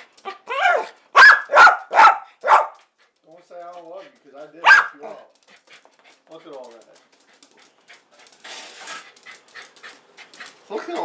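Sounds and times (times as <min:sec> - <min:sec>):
dog panting: 0:02.0 - 0:11.0.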